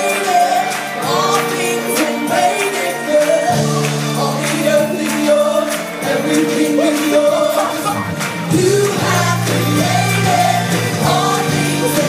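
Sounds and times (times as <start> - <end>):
bass: 0.0 - 12.0
gospel choir singing: 0.0 - 12.0.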